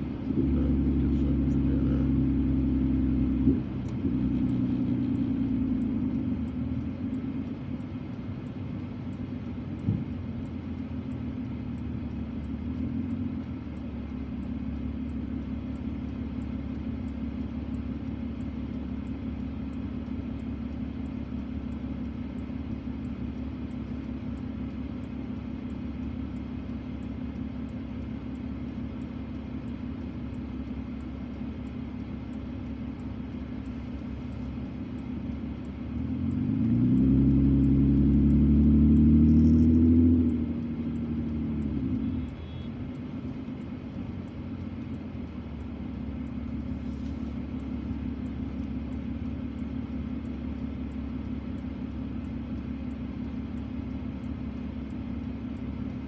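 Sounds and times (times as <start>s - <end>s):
car engine idling and revving: 0.0s - 56.0s.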